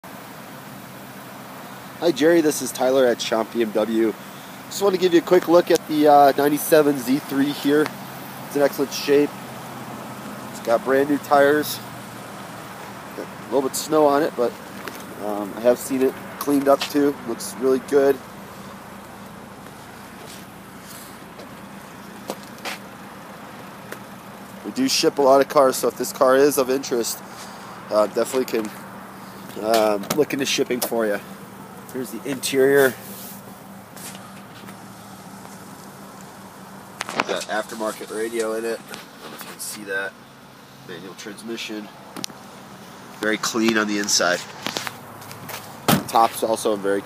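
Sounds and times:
car engine idling: 0.0s - 47.0s
distant road traffic hiss: 0.0s - 47.0s.

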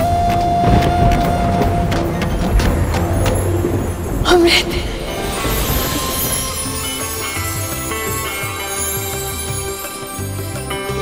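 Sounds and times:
dramatic held notes: 0.0s - 11.0s
low rumble: 0.2s - 8.3s
drum hits: 0.7s - 7.6s.

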